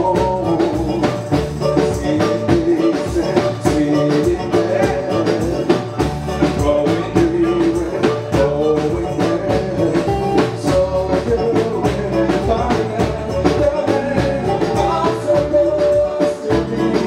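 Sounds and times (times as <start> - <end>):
backing vocals: 0.0 - 17.0
live band playing: 0.0 - 17.0
man singing lead vocals: 0.0 - 17.0.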